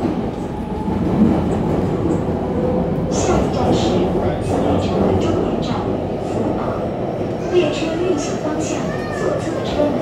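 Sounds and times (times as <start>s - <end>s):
metro train interior rumble: 0.0s - 10.0s.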